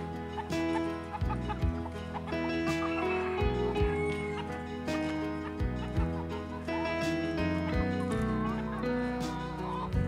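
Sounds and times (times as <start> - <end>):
chickens clucking: 0.0 - 10.0
music with bass and drums: 0.0 - 10.0.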